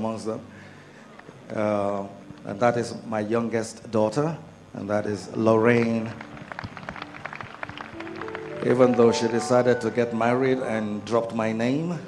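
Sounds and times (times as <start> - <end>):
audience applause: 5.6 - 10.6.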